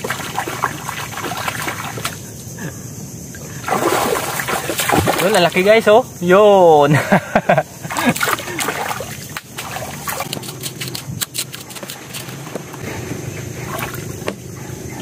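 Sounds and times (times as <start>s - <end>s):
shallow water sloshing and splashing: 0.0s - 2.3s, 3.5s - 5.8s, 7.8s - 14.5s
knife knocking and scraping in mud: 9.5s - 12.8s.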